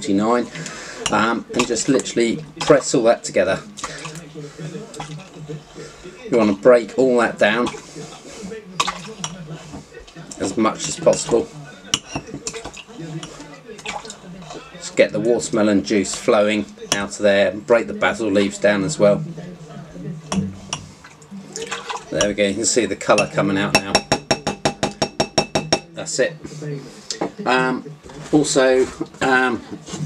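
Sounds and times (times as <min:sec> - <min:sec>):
metal muddler pounding fruit in glass: 0:23.1 - 0:25.9
muddler clinking against glass: 0:23.2 - 0:25.9.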